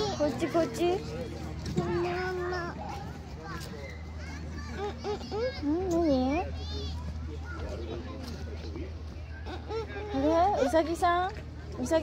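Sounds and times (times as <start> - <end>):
toddler babbling: 4.2 - 7.0.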